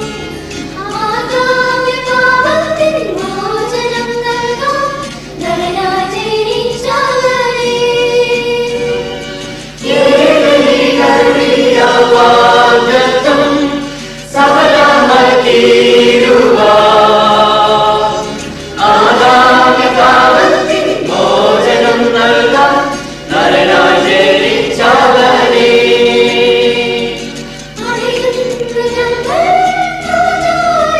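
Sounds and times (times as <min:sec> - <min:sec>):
church choir singing a carol: 0:09.7 - 0:30.9.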